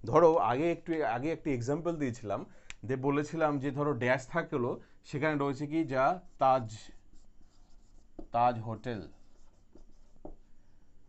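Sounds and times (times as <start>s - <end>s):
person speaking: 0.0s - 10.2s
marker writing on whiteboard: 5.9s - 11.0s.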